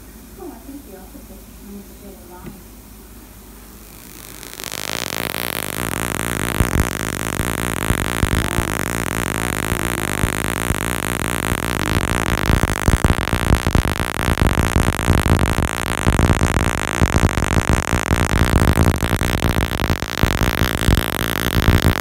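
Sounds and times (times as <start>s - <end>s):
harsh electrical buzzing: 2.9s - 22.0s.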